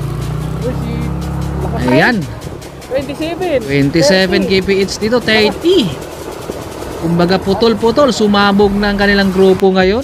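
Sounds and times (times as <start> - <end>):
background music: 0.0 - 10.0
motorcycle engine running: 0.0 - 10.0.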